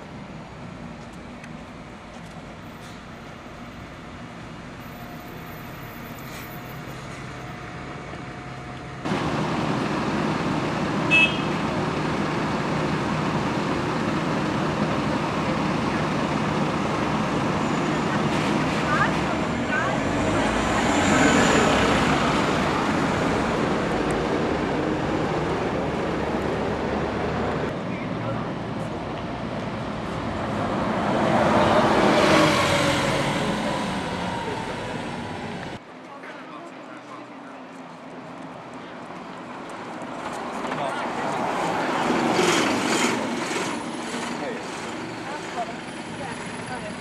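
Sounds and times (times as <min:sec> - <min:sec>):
bus engine drone: 0:00.0 - 0:36.0, 0:37.8 - 0:47.0
street traffic: 0:00.0 - 0:47.0.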